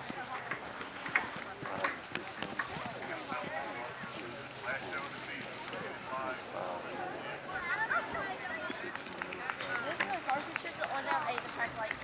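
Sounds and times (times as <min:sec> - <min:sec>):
chatter of spectators: 0:00.0 - 0:12.0.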